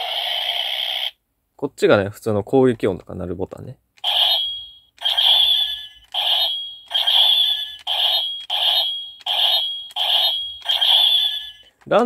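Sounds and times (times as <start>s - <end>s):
toy electronic attack sound effects: 4.0s - 11.6s.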